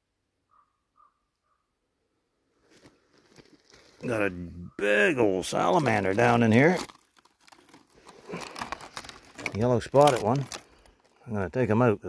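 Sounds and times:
distant bird calls: 0.4s - 1.8s.

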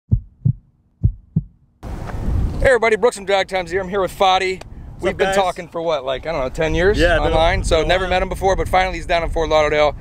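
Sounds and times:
heartbeat thumps: 0.1s - 1.7s
low microphone rumble: 0.1s - 2.7s, 6.2s - 10.0s.

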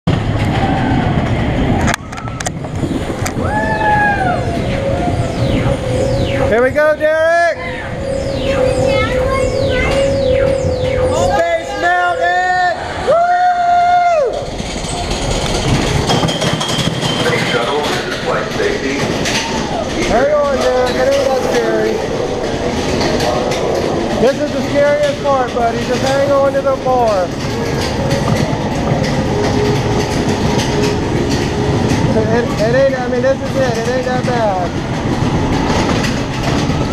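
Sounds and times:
coaster car rumbling on track: 0.0s - 36.9s
high-pitched held tones: 4.2s - 13.2s.

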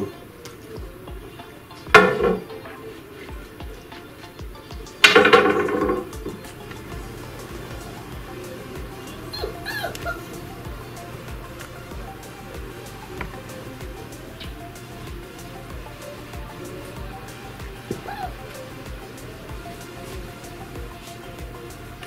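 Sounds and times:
puppy barking: 9.4s - 10.3s.

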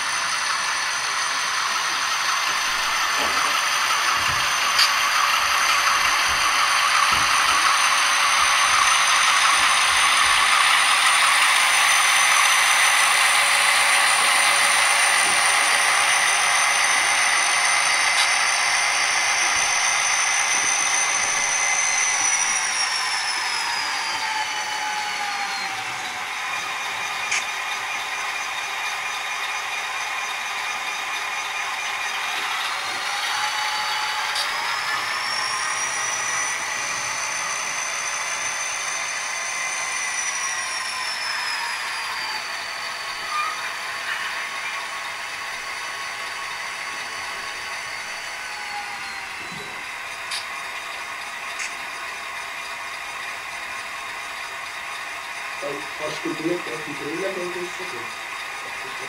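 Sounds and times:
high whine: 0.0s - 59.0s
model drives running: 0.0s - 59.0s
model locomotive diesel engine sound: 0.0s - 59.0s.

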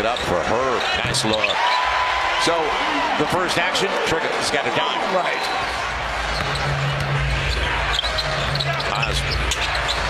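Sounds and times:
arena crowd noise: 0.0s - 10.0s.

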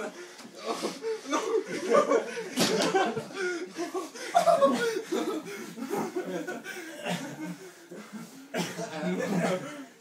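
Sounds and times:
people laughing: 0.0s - 10.0s
people speaking: 4.5s - 10.0s.

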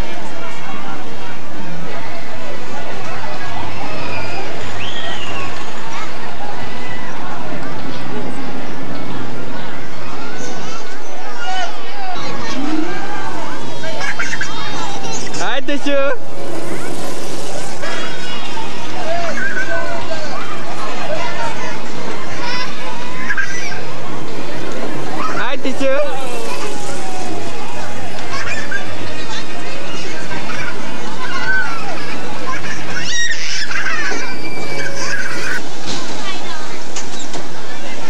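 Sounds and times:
background chatter: 0.0s - 38.0s
crowd noise: 0.0s - 38.0s
young children's voices: 3.4s - 37.0s
steady low hum: 5.8s - 31.2s
child squealing: 31.2s - 35.6s.

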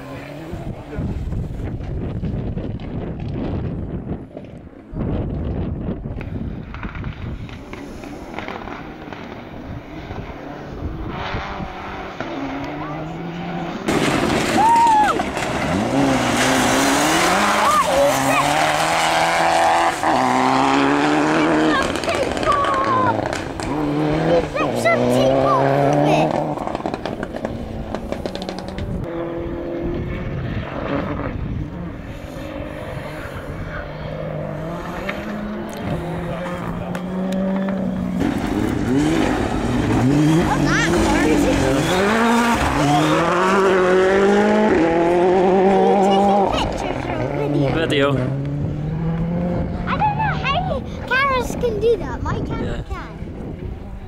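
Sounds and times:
distant car engine: 0.0s - 54.0s
rally car revving: 0.0s - 54.0s.

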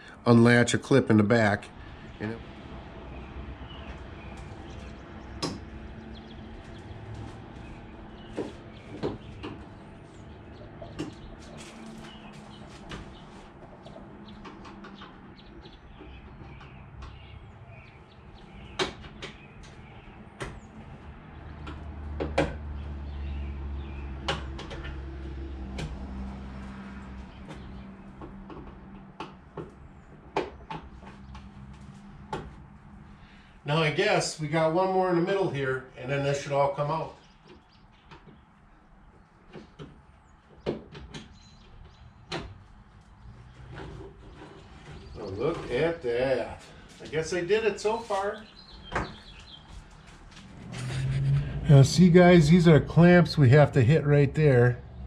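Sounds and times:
low hum: 50.2s - 55.0s.

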